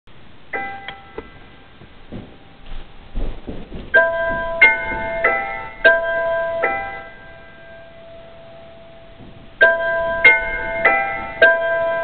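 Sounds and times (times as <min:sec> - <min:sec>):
soft low thumps: 0:01.2 - 0:07.2, 0:08.8 - 0:12.0
piano notes and chords: 0:03.4 - 0:12.0.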